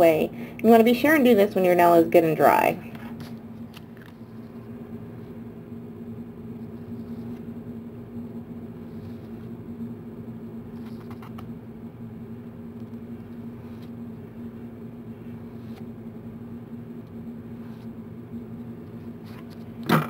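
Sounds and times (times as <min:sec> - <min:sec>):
steady low motor hum: 0:00.0 - 0:20.0.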